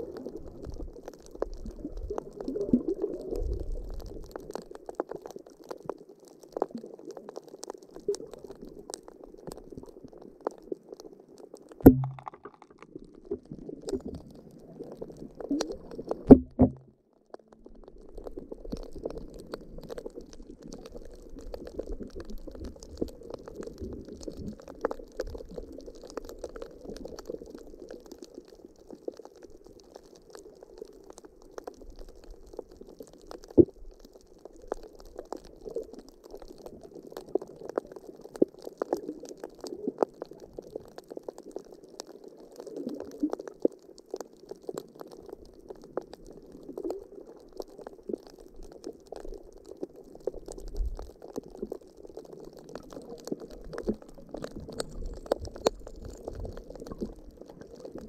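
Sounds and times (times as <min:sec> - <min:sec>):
underwater wash of moving water: 0:00.0 - 0:58.0
faint clicks: 0:34.7 - 0:58.0.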